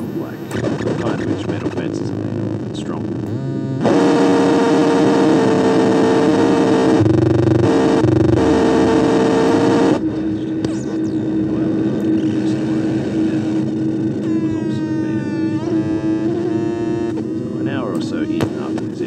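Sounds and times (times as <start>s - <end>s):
distorted synthesizer drone: 0.0s - 19.0s.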